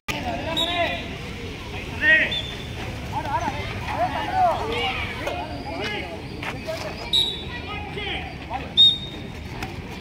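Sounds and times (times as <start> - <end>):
players calling out: 0.1 - 10.0.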